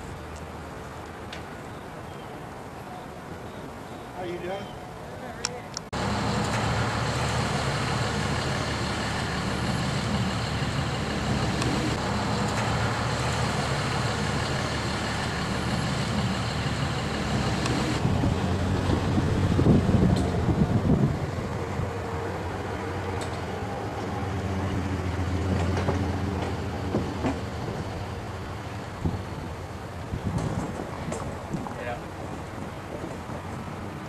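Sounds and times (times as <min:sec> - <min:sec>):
large engine running: 0:06.0 - 0:31.6.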